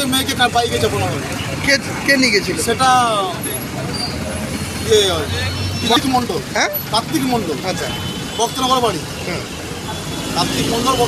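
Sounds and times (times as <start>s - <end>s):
street traffic: 0.0s - 11.0s
man talking: 4.8s - 9.5s.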